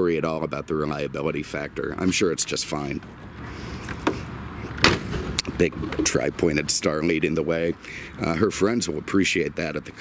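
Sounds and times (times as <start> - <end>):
car hood thudding shut: 4.8 - 5.4.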